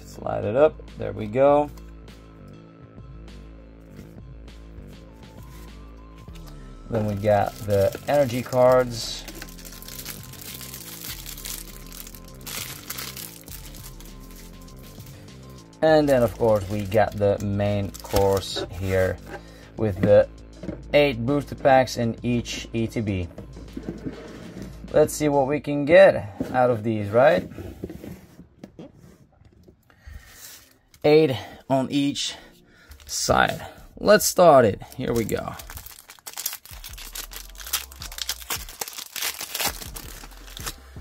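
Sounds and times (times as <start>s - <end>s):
background music with bass line: 0.0s - 27.4s, 39.7s - 41.0s
plastic wrap crinkling: 6.3s - 15.1s, 16.0s - 19.4s, 34.9s - 40.8s
foil packs rustling: 6.3s - 19.6s, 34.9s - 40.9s
cardboard boxes pushed and set down: 23.4s - 24.8s, 26.3s - 29.2s.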